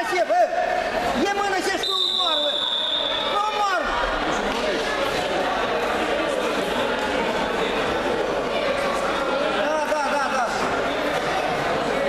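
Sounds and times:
voices shouting in a hall: 0.0 - 12.0.

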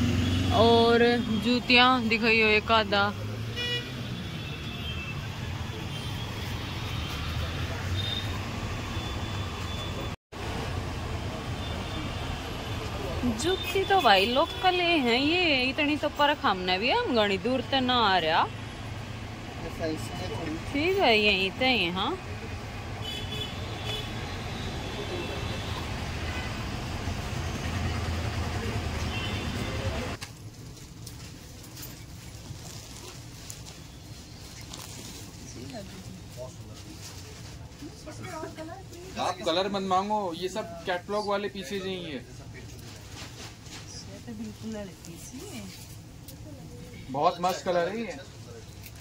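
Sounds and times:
low rumble of street traffic: 0.0 - 49.0.

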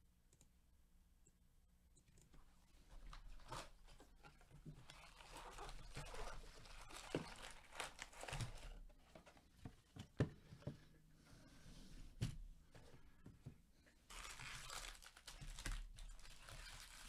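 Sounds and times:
foil packs crinkling: 4.8 - 8.9, 14.1 - 17.0
cardboard tearing: 5.1 - 8.8.

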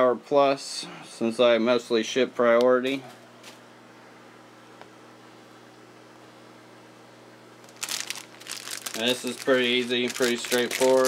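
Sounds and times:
plastic wrapper crinkling: 7.6 - 11.0.

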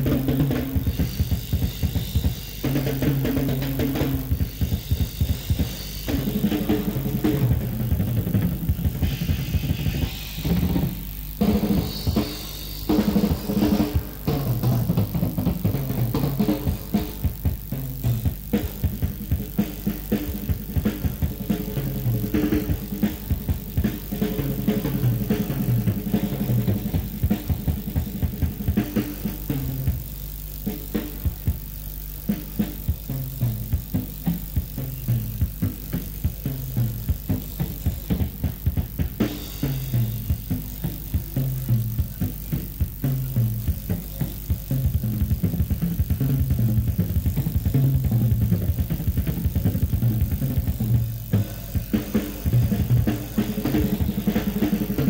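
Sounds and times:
drum kit solo: 0.0 - 55.0.

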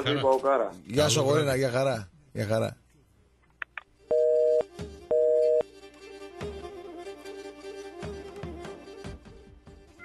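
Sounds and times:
telephone busy tone beeps: 4.1 - 5.6.

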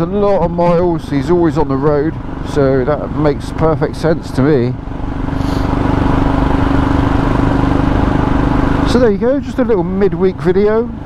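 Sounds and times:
motorcycle engine cruising: 0.0 - 11.0
wind and road rush: 0.0 - 11.0.

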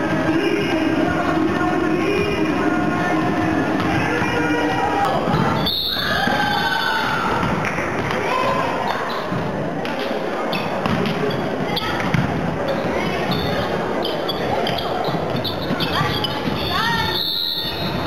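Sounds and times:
voices in echoing hall: 0.0 - 18.0.

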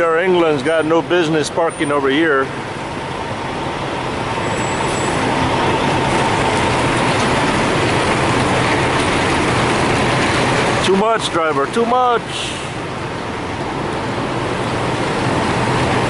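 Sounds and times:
truck diesel engine running: 0.0 - 16.0.

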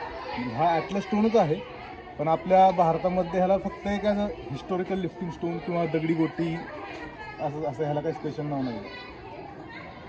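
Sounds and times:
faint background chatter: 0.0 - 10.0.

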